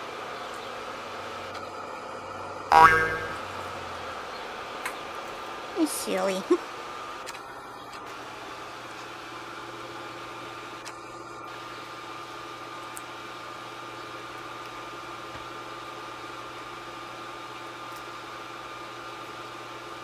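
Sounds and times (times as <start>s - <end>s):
steady machine hum: 0.0s - 20.0s.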